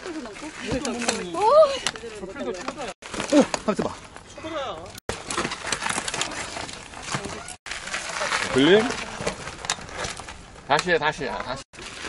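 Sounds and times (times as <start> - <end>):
bike tyres crunching over dirt: 0.0 - 12.0.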